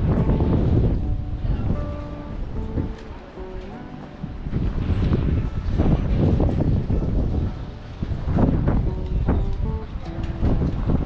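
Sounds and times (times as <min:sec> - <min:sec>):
background music: 0:00.0 - 0:11.0
wind buffeting microphone: 0:00.0 - 0:11.0.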